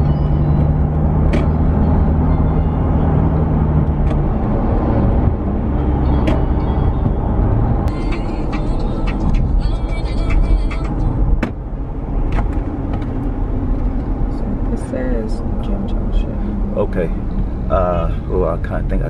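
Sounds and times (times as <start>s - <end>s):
car road noise rumble: 0.0s - 19.0s.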